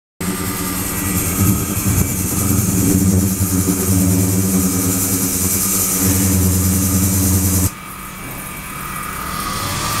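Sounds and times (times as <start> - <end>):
ultrasonic cleaner buzzing: 0.2 - 7.8.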